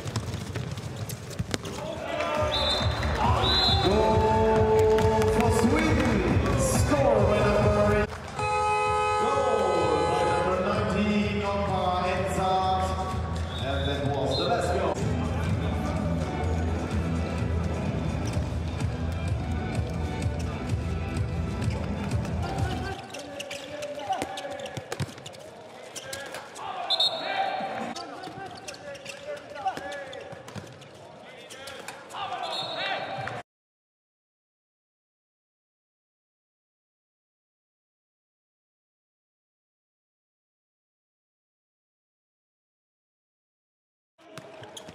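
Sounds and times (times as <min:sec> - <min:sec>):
ball bouncing on court: 0:00.0 - 0:03.9, 0:24.1 - 0:25.4, 0:28.6 - 0:30.8, 0:44.3 - 0:44.9.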